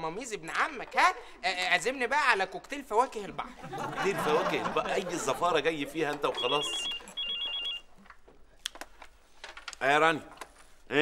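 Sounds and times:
mobile phone ringing: 0:06.3 - 0:08.0.

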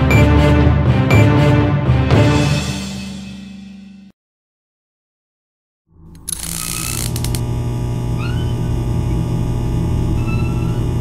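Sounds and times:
quick clicks: 0:06.2 - 0:07.5
light bulb electrical buzz: 0:06.2 - 0:11.0.

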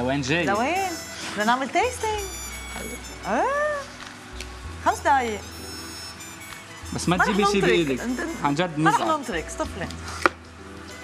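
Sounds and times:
faint background music: 0:00.0 - 0:11.0
person exclaiming: 0:07.2 - 0:07.9.

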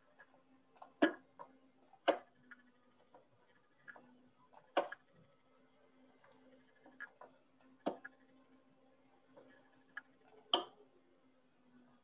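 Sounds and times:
computer mouse clicks: 0:03.8 - 0:05.1, 0:06.2 - 0:08.2, 0:09.3 - 0:10.8.

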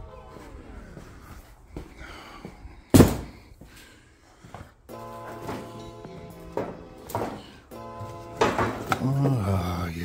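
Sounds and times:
soft footsteps on garage floor: 0:00.2 - 0:09.5
background music: 0:04.9 - 0:10.0.

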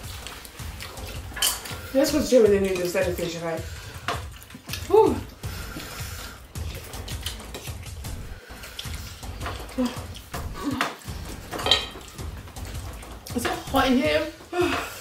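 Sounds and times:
chopsticks clicking on plates: 0:08.7 - 0:13.6.

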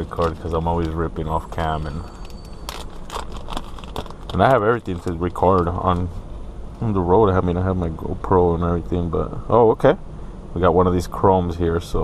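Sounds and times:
plastic wrapper crinkling: 0:00.0 - 0:06.1.

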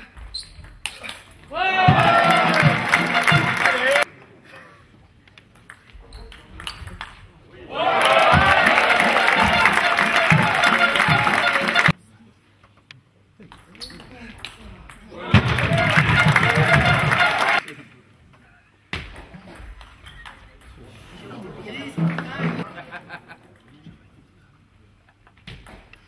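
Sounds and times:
spectators cheering and shouting: 0:01.5 - 0:04.0, 0:07.7 - 0:11.9, 0:15.3 - 0:17.6.

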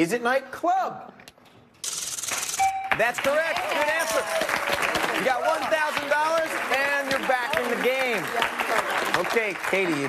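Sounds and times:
short held tone: 0:02.6 - 0:03.0.

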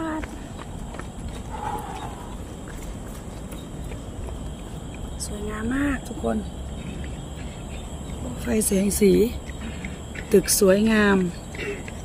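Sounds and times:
footsteps on walkway: 0:00.0 - 0:12.0.

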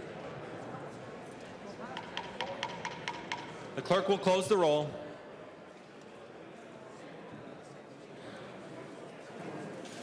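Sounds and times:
murmur of many voices: 0:00.0 - 0:10.0.

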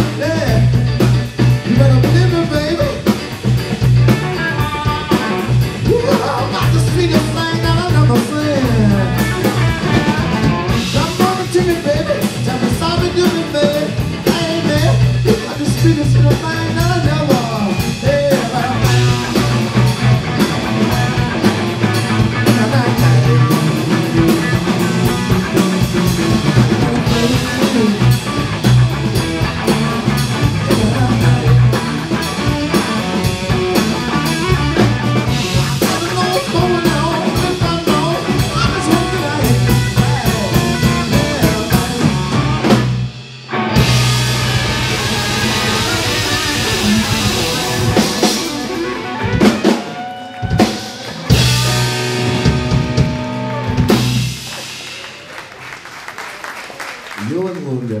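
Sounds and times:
blues band playing: 0:00.0 - 0:58.0
lead guitar bent notes: 0:13.2 - 0:49.8.

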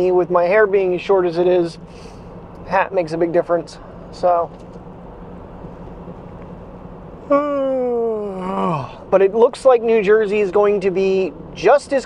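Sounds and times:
car road and engine noise: 0:00.0 - 0:12.0
man sighing: 0:07.3 - 0:09.0.

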